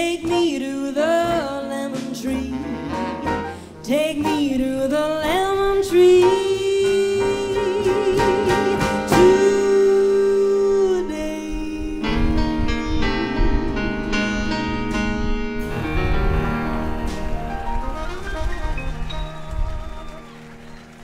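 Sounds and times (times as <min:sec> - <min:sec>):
woman singing with vibrato: 0:00.0 - 0:03.1, 0:03.7 - 0:14.5
jazz band playing: 0:00.0 - 0:11.1, 0:12.0 - 0:21.0.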